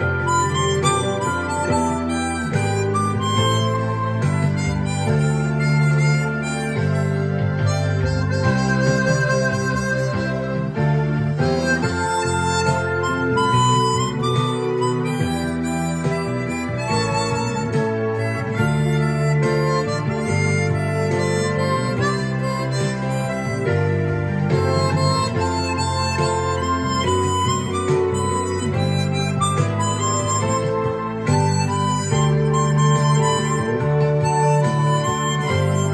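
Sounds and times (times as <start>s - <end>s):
harmonica playing melody: 0.0s - 35.9s
recorded backing music with bass: 0.0s - 35.9s.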